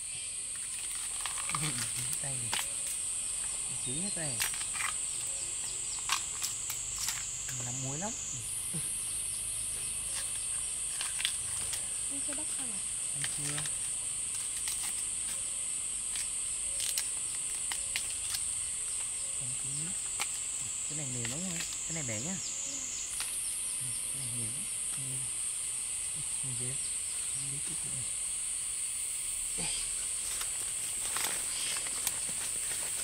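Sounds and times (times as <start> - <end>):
high-pitched insect drone: 0.0 - 33.0
husks being peeled by hand: 13.2 - 15.4, 29.8 - 33.0.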